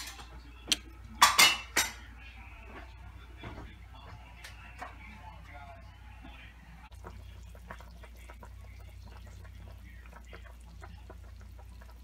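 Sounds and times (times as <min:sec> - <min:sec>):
sauce bubbling in a skillet: 0:06.9 - 0:12.0.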